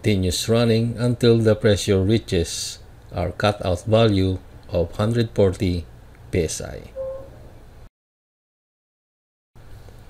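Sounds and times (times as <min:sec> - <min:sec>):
faint hum and hiss: 0:00.0 - 0:07.9, 0:09.6 - 0:10.0.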